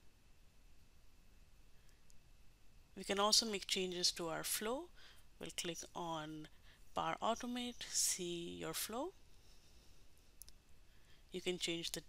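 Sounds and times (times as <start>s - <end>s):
faint clicks: 10.4s - 10.6s.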